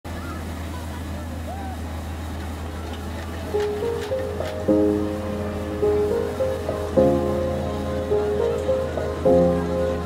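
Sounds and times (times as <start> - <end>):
machine engine low drone: 0.1 - 10.0
people's voices: 0.1 - 10.0.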